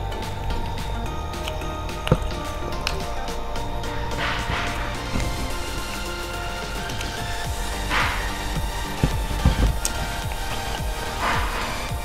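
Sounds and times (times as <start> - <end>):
electronic background music: 0.0 - 12.0
rushing noise: 0.0 - 12.0.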